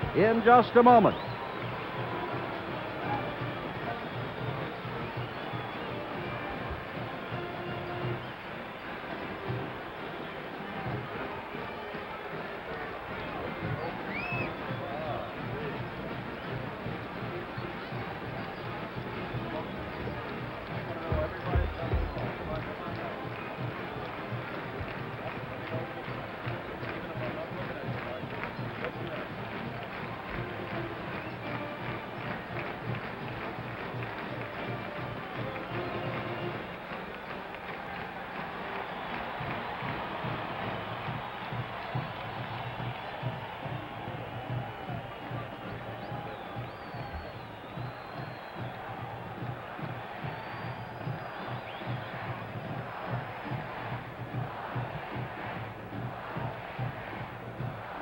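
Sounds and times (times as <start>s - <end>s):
large crowd noise: 0.0s - 58.0s
marching band playing: 0.0s - 58.0s.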